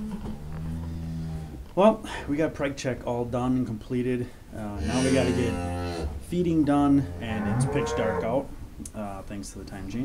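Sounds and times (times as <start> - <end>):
cow mooing: 4.8 - 6.2, 6.9 - 8.4.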